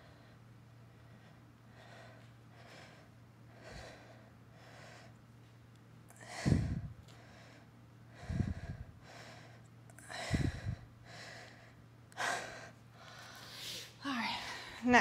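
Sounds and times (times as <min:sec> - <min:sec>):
woman speaking: 0:14.0 - 0:15.0.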